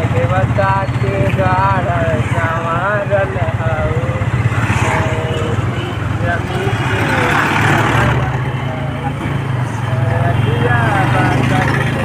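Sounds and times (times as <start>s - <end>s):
motorcycle engine cruising: 0.0s - 12.0s
road and wind noise: 0.0s - 12.0s
rushing noise: 2.0s - 11.0s.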